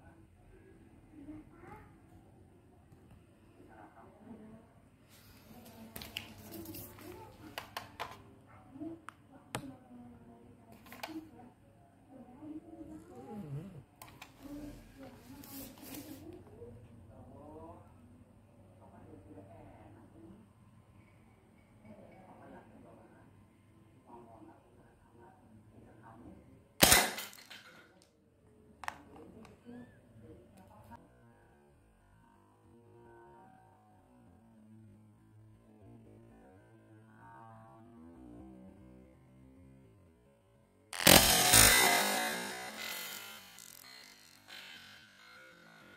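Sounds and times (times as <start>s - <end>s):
pistol shot: 26.8s - 27.6s
sharp clicks: 41.0s - 44.6s.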